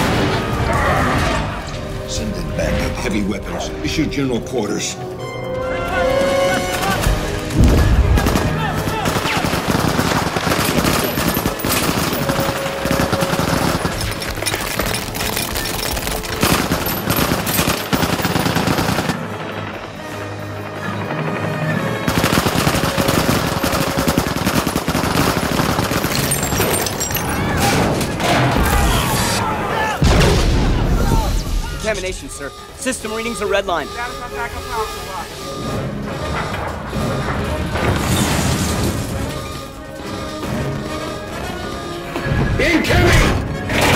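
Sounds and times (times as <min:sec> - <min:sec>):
orchestral score: 0:00.0 - 0:14.8
automatic weapon fire: 0:07.6 - 0:14.3, 0:22.1 - 0:26.7.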